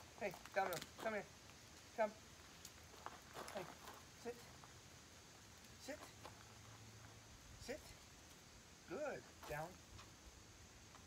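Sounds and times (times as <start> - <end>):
high insect drone: 0.0 - 11.0
man giving commands to dog: 0.2 - 1.3, 3.5 - 4.5, 5.8 - 6.2, 7.6 - 8.0, 8.9 - 9.8.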